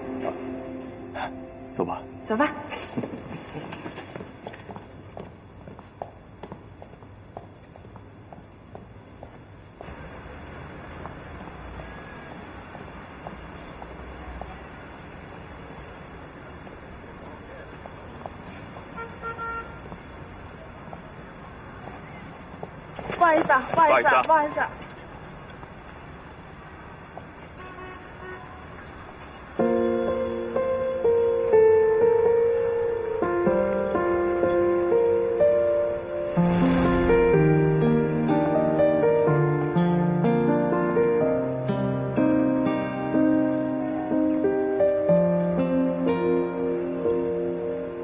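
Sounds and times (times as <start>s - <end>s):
background music with sustained chords: 0.0s - 3.0s
distant traffic: 0.0s - 41.7s.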